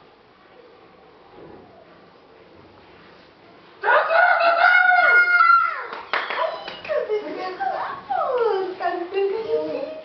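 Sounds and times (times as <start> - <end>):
children crowing like a rooster: 3.8 - 6.2.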